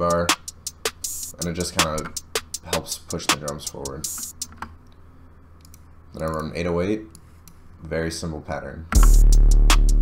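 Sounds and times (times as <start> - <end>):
open hi-hat: 0.0 - 4.6, 9.0 - 10.0.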